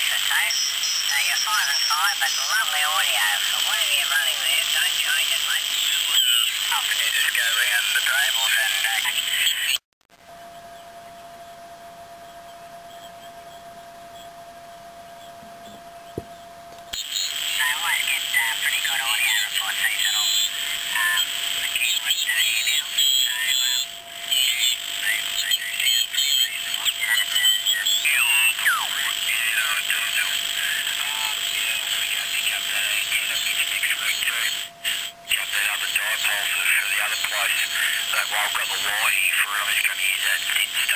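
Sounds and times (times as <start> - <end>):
radio hiss: 0.0 - 9.8, 16.9 - 40.9
radio voices: 0.0 - 9.8, 17.0 - 40.9
steady radio whistle: 0.0 - 40.9.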